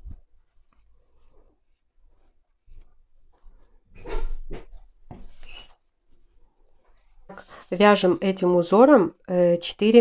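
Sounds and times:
cord rubbing and scraping: 0:00.0 - 0:08.1.

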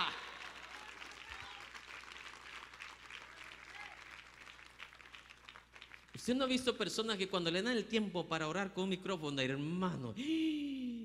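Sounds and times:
congregation applauding: 0:00.0 - 0:06.6.

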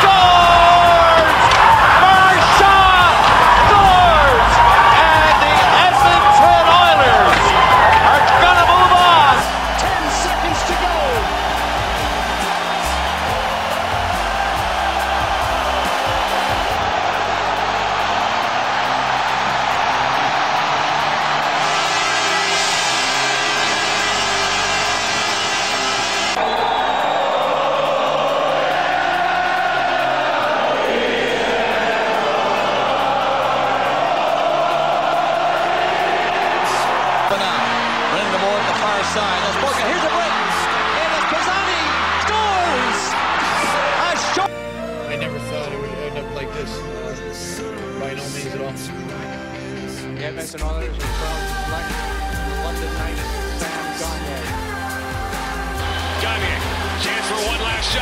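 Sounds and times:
arena crowd noise: 0:00.0 - 0:58.0
background song: 0:00.0 - 0:58.0.

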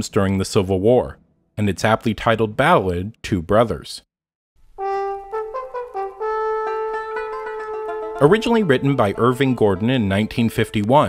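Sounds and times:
instrumental melody: 0:04.8 - 0:11.0.

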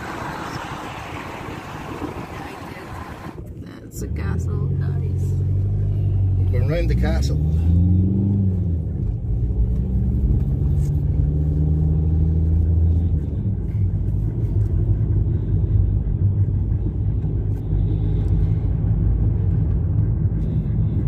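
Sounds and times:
tyre and road rumble: 0:00.0 - 0:03.6
car engine: 0:00.0 - 0:21.0.

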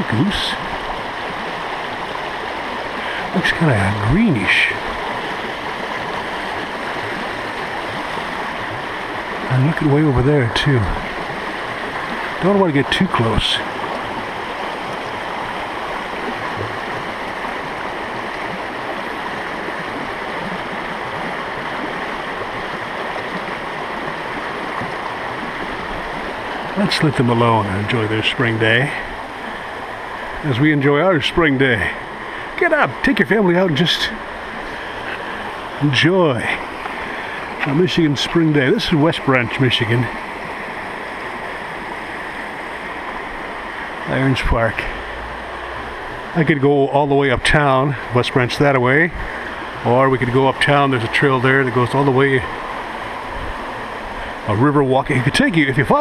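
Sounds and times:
river water rushing over rocks: 0:00.0 - 0:56.0.

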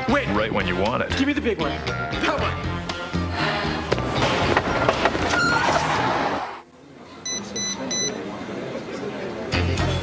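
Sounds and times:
loud rushing clattering noise: 0:03.9 - 0:06.6
mobile phone beeps: 0:07.2 - 0:08.2.

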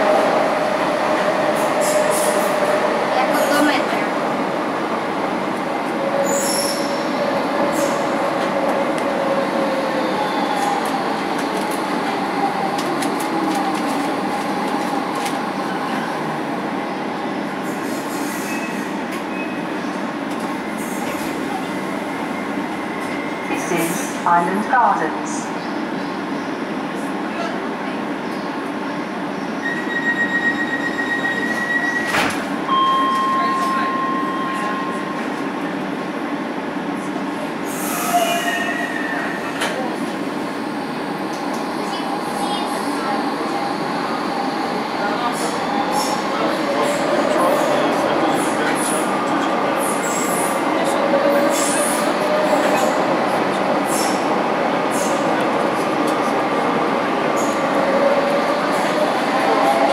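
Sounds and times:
train wheels rumbling on rail: 0:00.0 - 0:24.3, 0:25.4 - 0:59.9.

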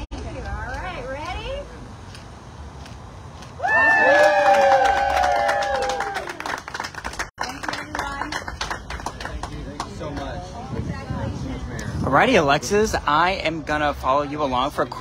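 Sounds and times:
group cheering: 0:03.6 - 0:06.6.

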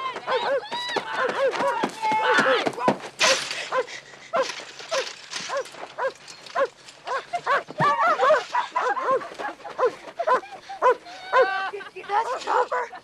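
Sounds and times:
dog barking: 0:00.3 - 0:00.6, 0:09.8 - 0:11.5.

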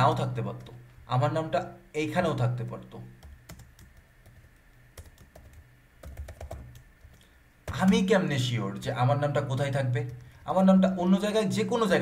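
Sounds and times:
keyboard typing clicks: 0:03.2 - 0:08.0.

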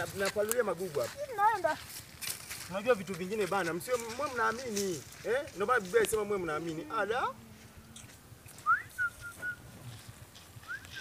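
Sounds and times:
high whistled call: 0:08.6 - 0:09.6, 0:10.6 - 0:11.0.

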